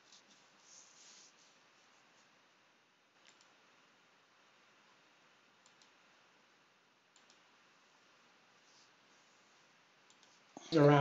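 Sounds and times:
computer mouse clicks: 3.2 - 3.6, 5.6 - 6.0, 7.1 - 7.5, 10.1 - 10.4.

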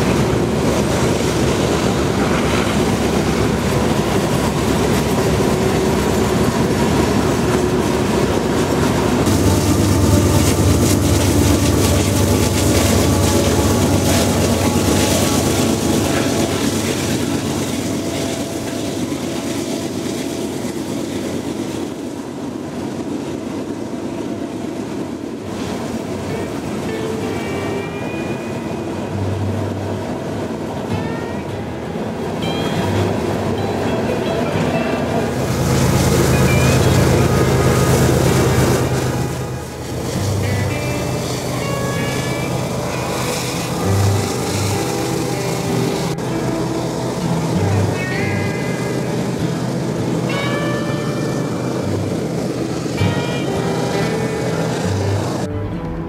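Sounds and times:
diesel locomotive engine drone: 0.0 - 56.0
rolling rumble of freight cars: 0.0 - 56.0.

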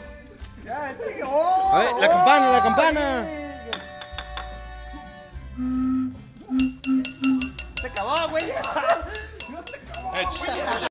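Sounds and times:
voices shouting: 1.3 - 3.6
low tone: 5.6 - 7.9
metal bell struck rapidly: 6.6 - 10.9.

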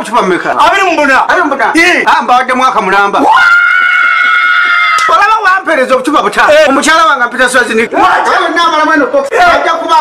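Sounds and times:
long high-pitched scream: 3.2 - 5.2.

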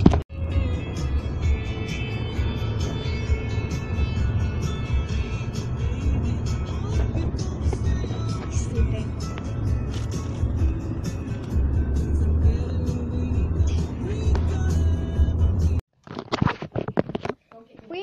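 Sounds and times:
car cabin road rumble: 0.0 - 15.8
music playing: 0.0 - 15.8.

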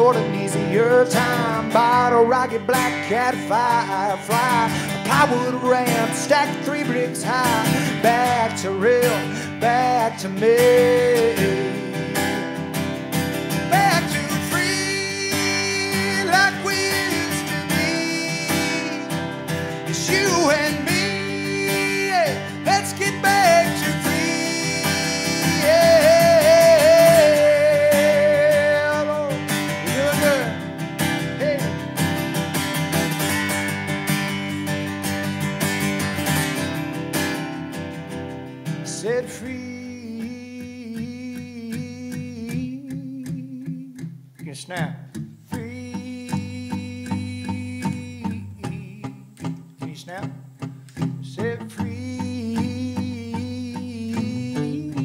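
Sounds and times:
acoustic guitar playing: 0.0 - 55.0
sliding lead melody: 0.2 - 38.9, 52.0 - 55.0
man singing held note: 13.8 - 30.6, 51.3 - 55.0.

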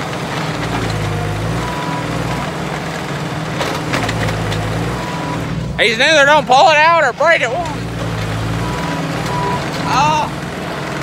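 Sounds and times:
loader engine running: 0.0 - 11.0.

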